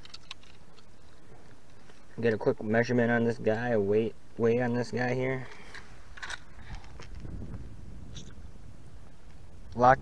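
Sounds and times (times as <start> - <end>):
soft handling clicks and rustles: 0.0 - 2.3, 5.3 - 7.3
low steady rumble: 0.2 - 10.0.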